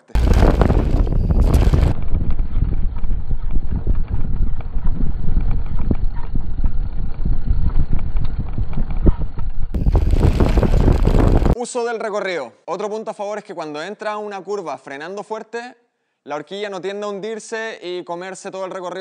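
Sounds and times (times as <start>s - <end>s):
wind rumbling on microphone: 0.0s - 11.6s
bike wheel knocks and rattles: 0.2s - 11.6s.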